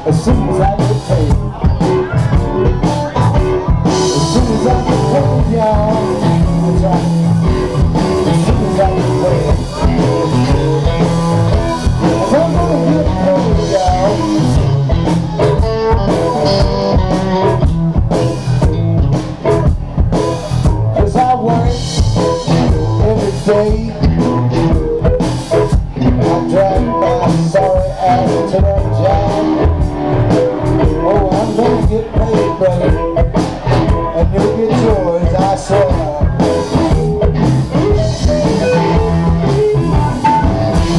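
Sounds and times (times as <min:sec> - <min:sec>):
blues-rock band playing: 0:00.0 - 0:40.9.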